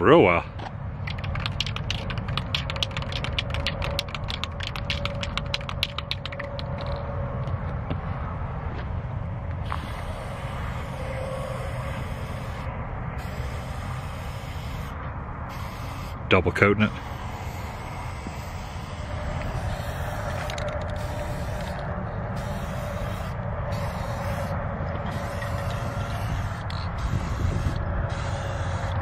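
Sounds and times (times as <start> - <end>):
wind rumble on microphone: 0.0 - 16.3, 17.0 - 29.0
spray can rattling: 1.0 - 7.0, 16.9 - 24.5, 25.1 - 29.0
spray can hissing: 1.1 - 6.9, 9.6 - 16.2, 16.9 - 21.8, 22.4 - 24.5, 25.1 - 29.0.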